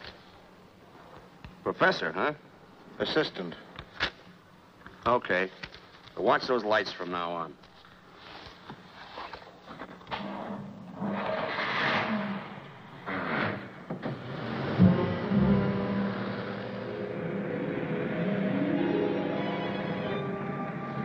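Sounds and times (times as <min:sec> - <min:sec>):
car engine pulling away: 0:11.4 - 0:19.0
orchestral film score: 0:14.4 - 0:21.0.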